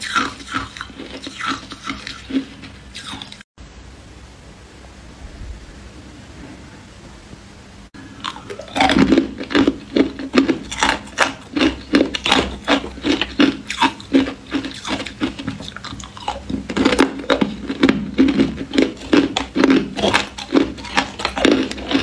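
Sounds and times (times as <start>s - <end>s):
ice crunching while chewed: 0.0s - 3.4s, 8.2s - 22.0s.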